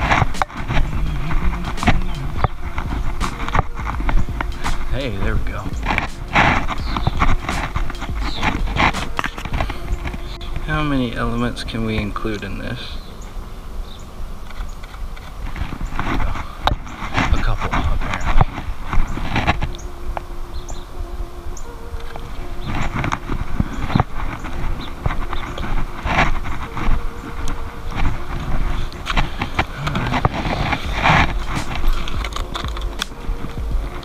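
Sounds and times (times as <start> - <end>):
knocks and rustles: 0.0 - 10.7, 22.0 - 34.0
faint steady tones: 0.0 - 34.0.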